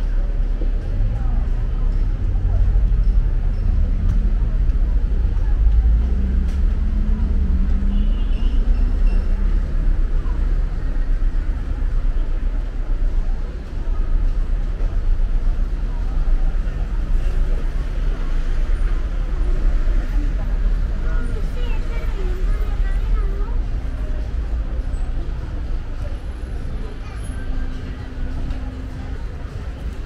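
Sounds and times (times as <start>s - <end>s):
people talking: 0.0s - 30.0s
road traffic rumble: 0.0s - 30.0s.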